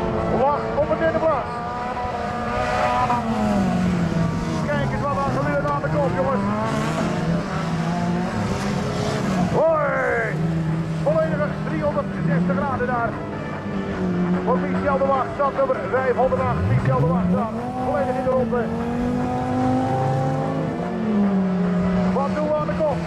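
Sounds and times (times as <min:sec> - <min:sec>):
race car engines revving: 0:00.0 - 0:23.0.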